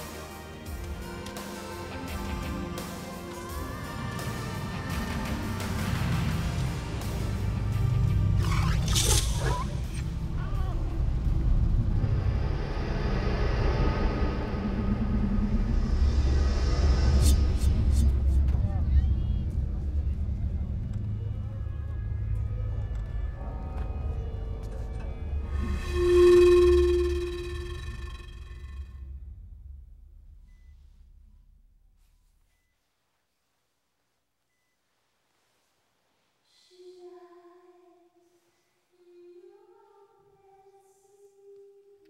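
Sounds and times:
music: 0.0 - 30.8
low traffic rumble: 10.0 - 25.9
loud held tone with overtones: 25.5 - 29.0.

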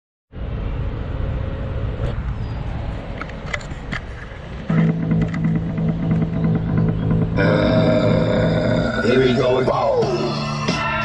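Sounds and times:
hip-hop backing track: 4.7 - 8.2, 9.0 - 11.0.

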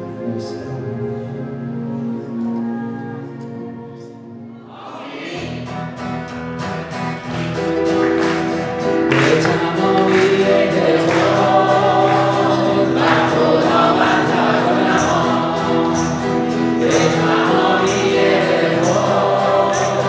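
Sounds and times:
man singing: 0.0 - 3.4, 9.0 - 20.0
keyboard accompaniment: 0.0 - 20.0
acoustic guitar strumming: 4.4 - 20.0.

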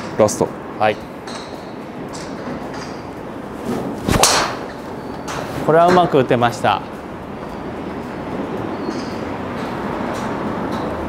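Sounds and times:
golf club swing swish: 3.7 - 4.7
golf ball struck crack: 4.1 - 4.7.

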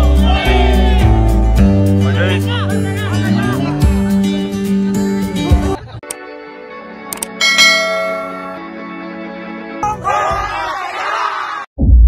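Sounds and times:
bright ringing bell chime: 7.4 - 8.6.

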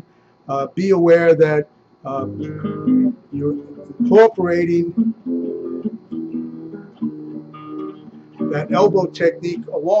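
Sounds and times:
classical guitar plucked notes: 2.2 - 10.0.

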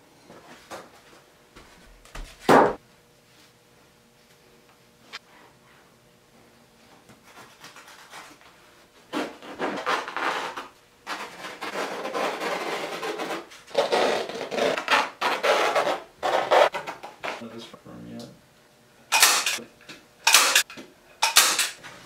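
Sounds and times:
knife rasping through canvas: 9.1 - 17.4.

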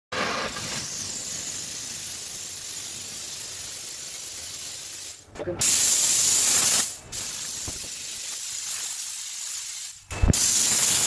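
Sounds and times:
steam cleaner hissing: 0.1 - 11.0.

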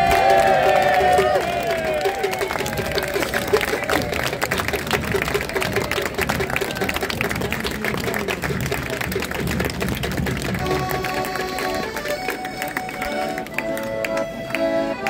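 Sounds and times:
crowd clapping: 0.0 - 15.0
accordion playing held chords: 10.4 - 15.0.

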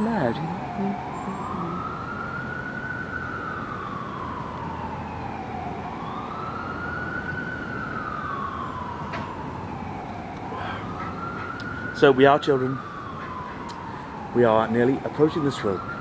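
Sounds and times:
emergency siren wailing: 0.0 - 16.0.

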